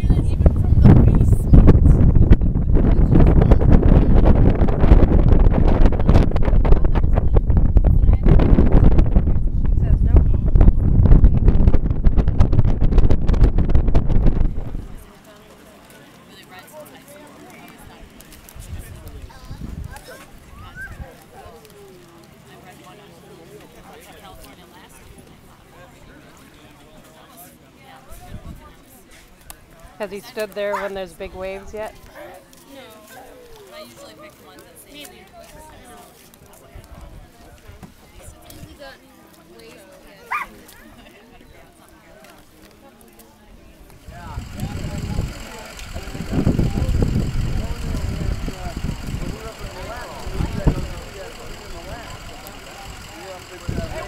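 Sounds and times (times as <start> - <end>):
wind buffeting microphone: 0.0 - 15.1, 18.6 - 21.1, 43.9 - 52.4, 53.6 - 54.0
faint distant voices: 14.3 - 54.0.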